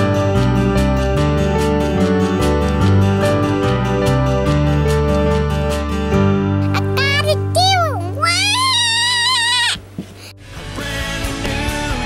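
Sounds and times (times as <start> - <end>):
background music: 0.0 - 12.0
girl yelling: 6.6 - 9.9.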